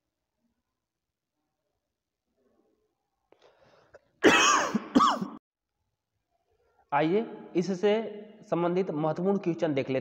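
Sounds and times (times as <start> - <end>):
man clearing his throat: 4.2 - 5.4.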